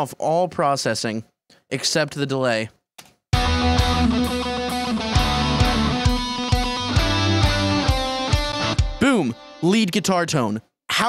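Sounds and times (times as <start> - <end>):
drums hitting: 3.4 - 9.0
distorted electric lead guitar: 3.4 - 9.6.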